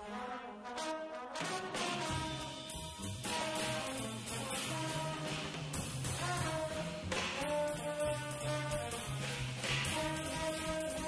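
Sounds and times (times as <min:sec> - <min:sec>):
saxophone and trombone long notes: 0:00.0 - 0:11.0
double bass line: 0:01.8 - 0:11.0
cymbal and drum strokes: 0:02.0 - 0:11.0.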